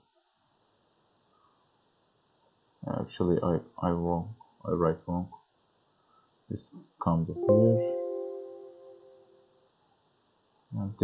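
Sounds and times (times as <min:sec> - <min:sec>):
microphone hiss: 0:00.0 - 0:11.0
man speaking: 0:02.8 - 0:05.3, 0:06.5 - 0:08.0, 0:10.8 - 0:11.0.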